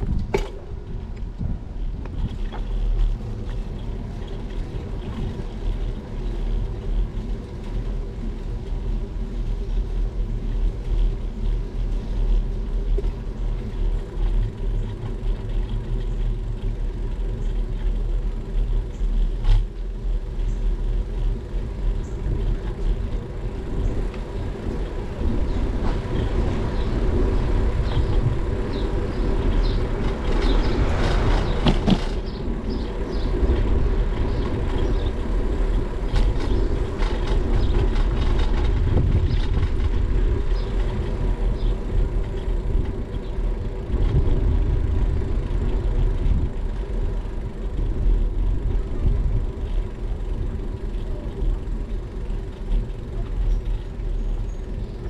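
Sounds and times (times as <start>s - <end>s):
bike tyres rolling on asphalt: 0.0s - 55.0s
wind rumbling on microphone: 0.0s - 55.0s.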